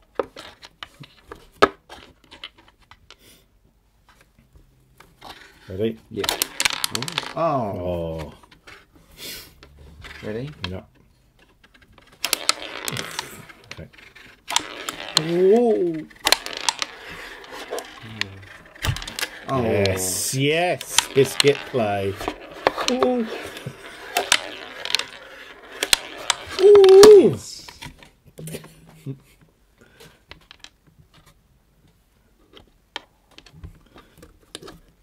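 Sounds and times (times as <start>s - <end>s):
game pieces scraping on wooden board: 0.2s - 3.4s, 4.9s - 28.1s, 29.8s - 31.4s, 32.5s - 35.0s.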